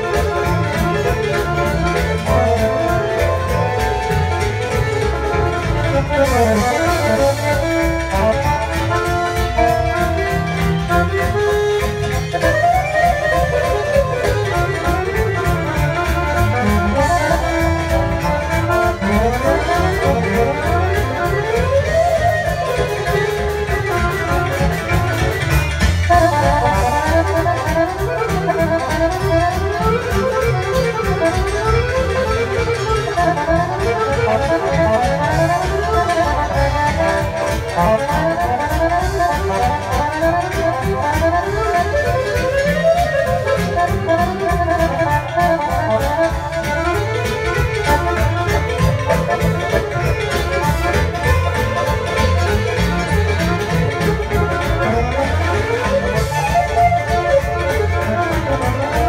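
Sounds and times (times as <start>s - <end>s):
accordion fast runs: 0.0s - 59.0s
folk band playing: 0.0s - 59.0s.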